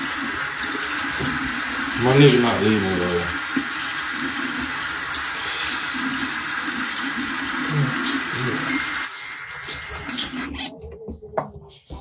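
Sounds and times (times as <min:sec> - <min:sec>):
shower running: 0:00.0 - 0:12.0.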